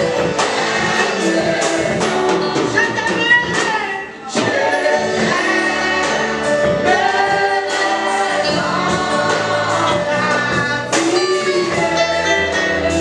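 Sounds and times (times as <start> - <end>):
musical accompaniment: 0.0 - 13.0
voices singing a gospel hymn: 0.0 - 13.0.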